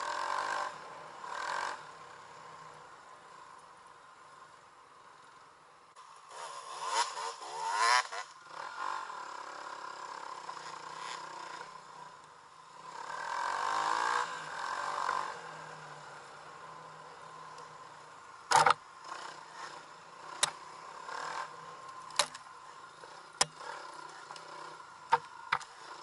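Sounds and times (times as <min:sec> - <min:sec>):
dirt bike engine revving: 0:00.0 - 0:02.6, 0:06.0 - 0:26.0.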